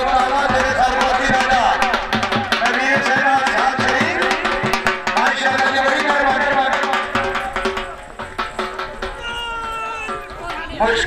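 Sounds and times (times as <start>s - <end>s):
man's long drawn-out shout: 9.2s - 10.3s
person calling out: 9.2s - 10.8s.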